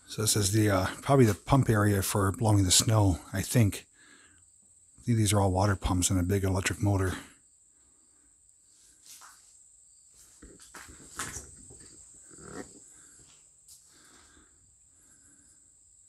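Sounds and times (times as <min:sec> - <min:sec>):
footsteps crunching on concrete: 0:08.9 - 0:09.5, 0:10.1 - 0:14.1
knocks and scrapes: 0:10.3 - 0:13.2.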